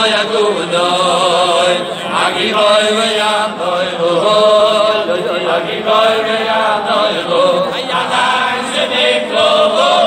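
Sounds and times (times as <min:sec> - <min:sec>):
men singing: 0:00.0 - 0:10.0.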